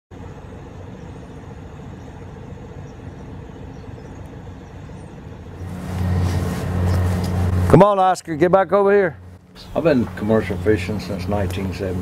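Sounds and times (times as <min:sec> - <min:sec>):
engine idling: 0:00.1 - 0:12.0.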